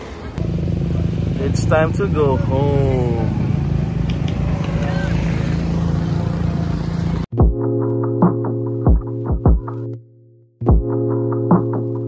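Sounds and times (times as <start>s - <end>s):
vehicle engine droning: 0.0s - 7.3s.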